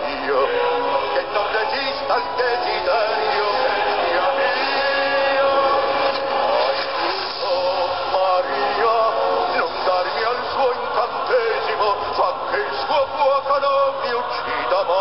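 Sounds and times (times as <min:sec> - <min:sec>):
man singing: 0:00.0 - 0:15.0
orchestral music: 0:00.0 - 0:15.0.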